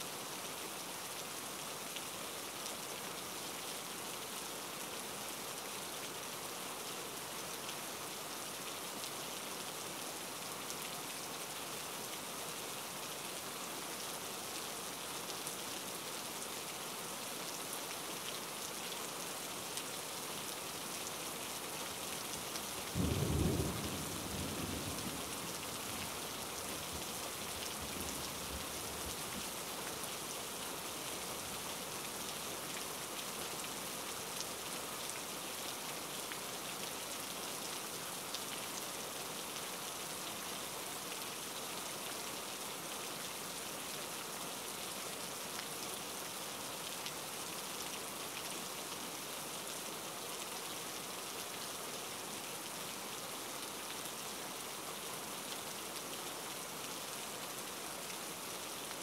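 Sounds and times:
steady rain: 0.0s - 59.0s.

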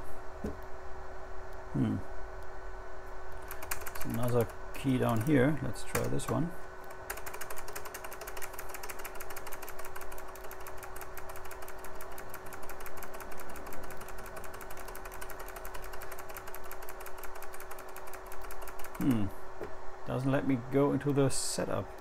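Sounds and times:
steady hum: 0.0s - 22.0s
keyboard key tapping rapidly: 3.4s - 6.4s, 7.0s - 19.2s.

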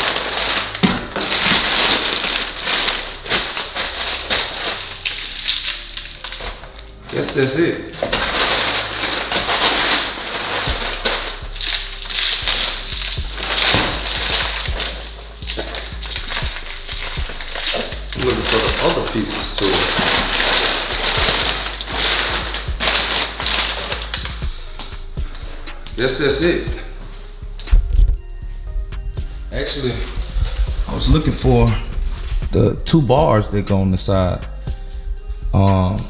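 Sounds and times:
packing paper rustling: 0.0s - 27.0s
bubble wrap crinkling: 0.0s - 28.4s.

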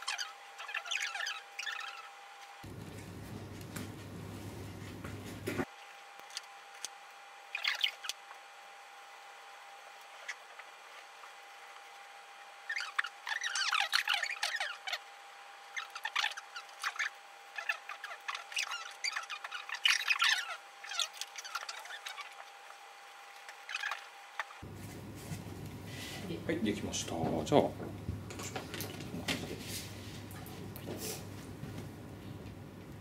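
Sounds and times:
marker scratching and squeaking: 0.0s - 2.2s, 7.5s - 8.2s, 10.1s - 11.1s, 12.6s - 15.0s, 15.7s - 22.6s, 23.3s - 24.6s.

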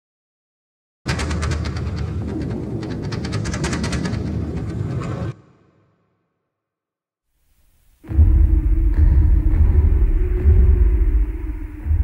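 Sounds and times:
harsh rattling noise: 1.1s - 5.4s
heavy low rumble: 8.0s - 12.0s.

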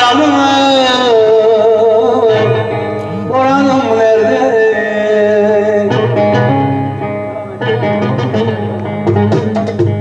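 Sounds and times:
plucked long-necked lute: 1.0s - 10.0s.

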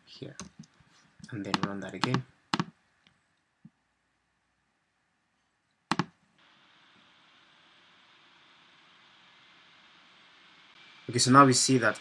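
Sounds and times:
faint steady hiss: 0.0s - 12.0s
computer mouse click: 1.5s - 2.7s, 5.9s - 6.1s.

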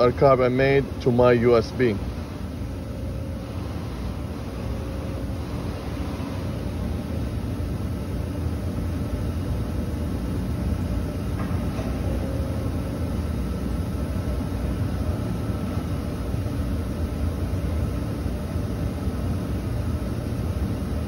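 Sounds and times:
low mechanical rumble and hum: 0.0s - 21.0s.

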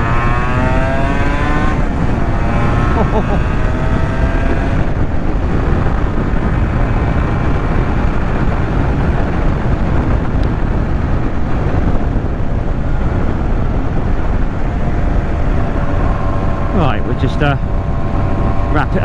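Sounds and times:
motorcycle engine running: 0.0s - 19.0s
wind rushing over microphone: 0.0s - 19.0s.

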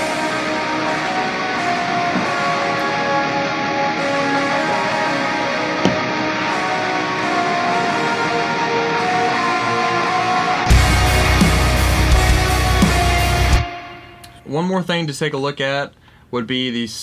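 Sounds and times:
metal band playing: 0.0s - 14.4s
reverb-washed fuzzy lead guitar: 0.0s - 14.4s
single sharp hit: 5.8s - 6.3s.

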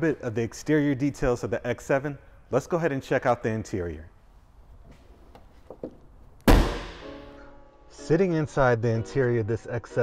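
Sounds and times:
car hood slamming shut: 6.5s - 7.3s.

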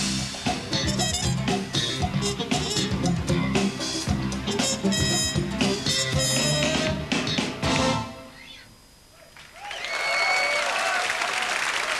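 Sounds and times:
audience applause and cheering: 9.3s - 11.9s
long whistle from crowd: 9.6s - 10.8s.

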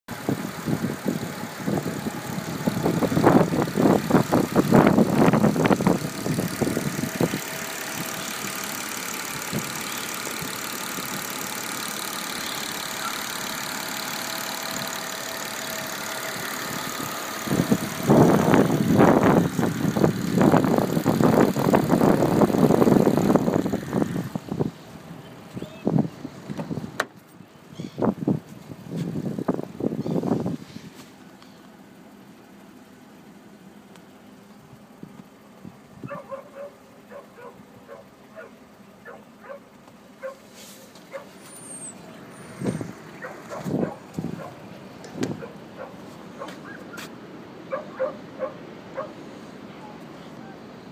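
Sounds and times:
car engine idling: 0.1s - 50.9s.

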